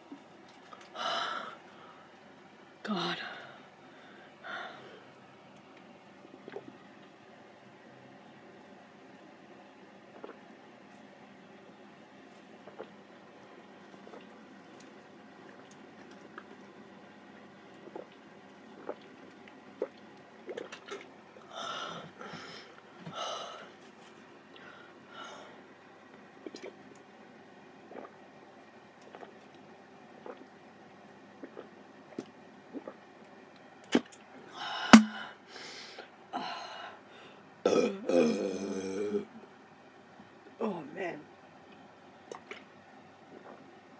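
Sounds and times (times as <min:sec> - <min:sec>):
person gulping soda: 0:06.2 - 0:07.1, 0:10.1 - 0:10.6, 0:12.5 - 0:13.1, 0:13.9 - 0:16.8, 0:17.6 - 0:21.2, 0:26.4 - 0:27.1, 0:27.9 - 0:28.3, 0:29.0 - 0:30.6, 0:31.3 - 0:33.2, 0:33.8 - 0:34.3, 0:34.9 - 0:35.2, 0:37.6 - 0:39.4, 0:42.2 - 0:42.7, 0:43.3 - 0:43.8
swallowing clicks: 0:35.0 - 0:35.2
woman burping: 0:37.7 - 0:39.3.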